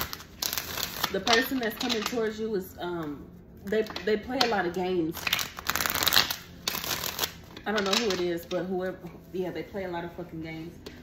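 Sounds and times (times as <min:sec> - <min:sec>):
cards being shuffled: 0:00.0 - 0:02.2, 0:05.2 - 0:08.3.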